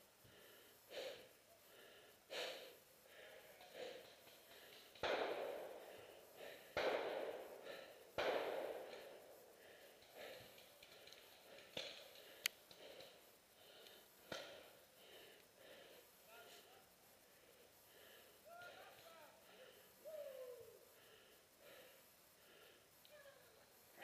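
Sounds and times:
person breathing hard: 0.0s - 23.0s.

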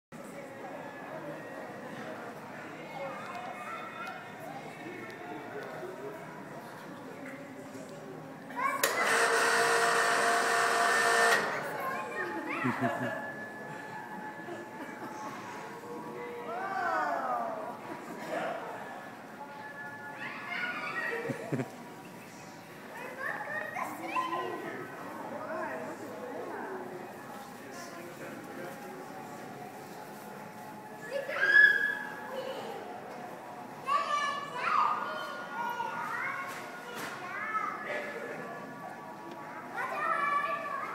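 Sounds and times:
children chattering and calling: 0.2s - 40.9s
crowd murmur: 0.2s - 40.9s
child squealing: 31.4s - 32.1s.

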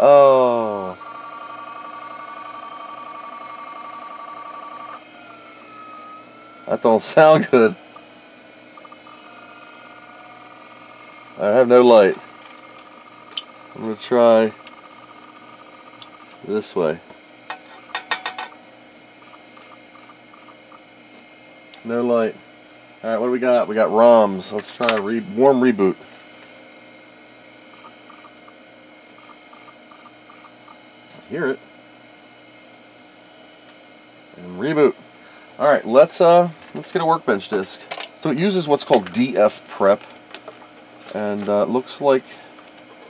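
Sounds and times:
hard drive high whine: 0.0s - 43.0s
steady electrical hum: 0.0s - 43.0s.

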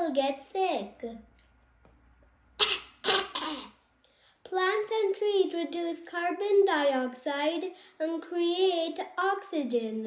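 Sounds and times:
boy coughing: 2.6s - 3.8s.

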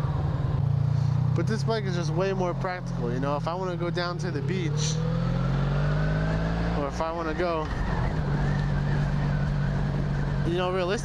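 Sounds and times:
motorcycle engine cruising: 0.0s - 11.0s
wind and road noise: 0.0s - 11.0s.

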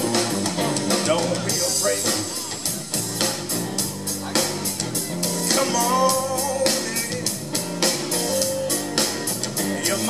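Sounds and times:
bass notes: 0.0s - 10.0s
drum kit with cymbals: 0.0s - 10.0s
electric guitar lead: 0.0s - 10.0s.

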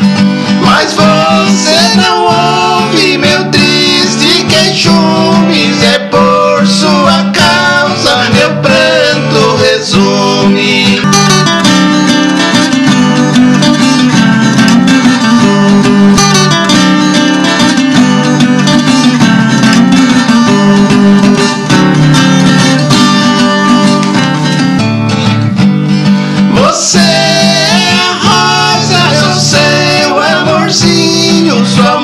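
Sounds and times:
acoustic guitars strumming: 0.0s - 32.0s
duet singing: 0.5s - 13.3s, 26.5s - 32.0s.

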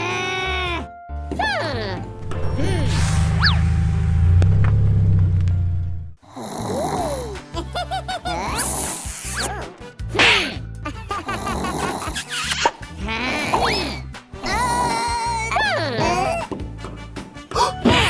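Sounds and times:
music: 0.0s - 18.0s
low rumble: 2.1s - 6.2s
comic snoring: 6.2s - 7.3s, 8.4s - 9.2s, 11.3s - 12.2s
squeaky cartoon voice sounds: 9.0s - 9.7s, 12.2s - 16.4s.

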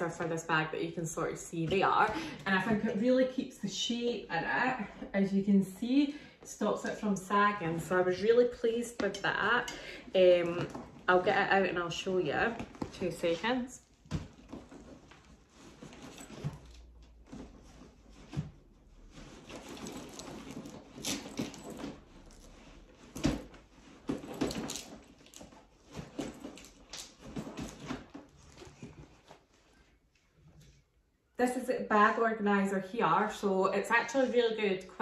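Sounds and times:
handbag contents rustling and knocking: 7.9s - 29.5s.

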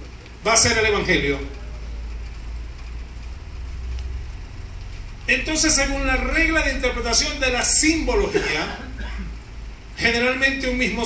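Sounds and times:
low-pitched hum: 0.0s - 10.0s.

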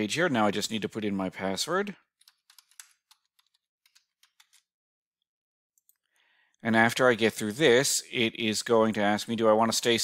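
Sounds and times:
quick keystrokes on keyboard: 2.2s - 4.7s.

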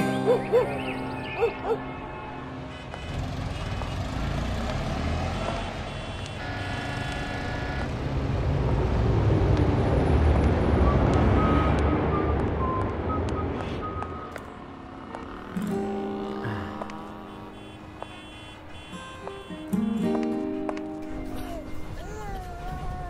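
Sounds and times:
traffic rumble: 0.0s - 23.0s
car horn honk: 5.4s - 7.9s, 16.0s - 20.1s.

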